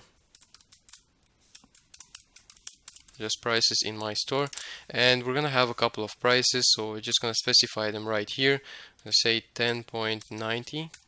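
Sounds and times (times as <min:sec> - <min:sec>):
typing on a computer keyboard: 0:00.2 - 0:03.2.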